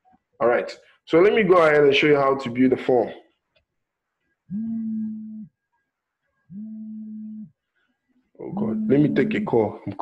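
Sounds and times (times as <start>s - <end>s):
mobile phone buzzing: 4.5s - 5.5s.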